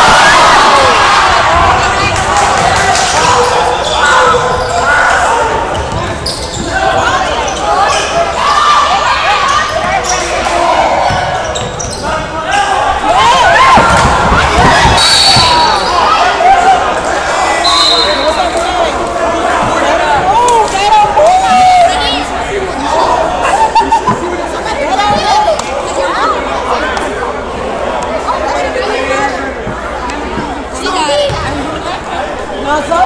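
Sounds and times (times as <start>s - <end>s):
spectators talking and shouting: 0.0s - 33.0s.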